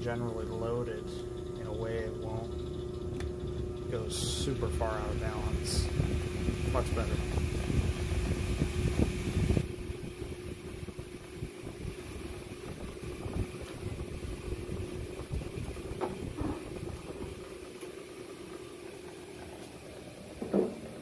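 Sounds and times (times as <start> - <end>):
washing machine spinning hum: 0.0 - 21.0.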